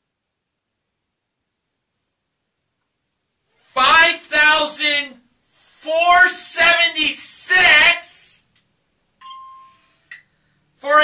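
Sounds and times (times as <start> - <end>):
bell-like chime: 9.2 - 10.1.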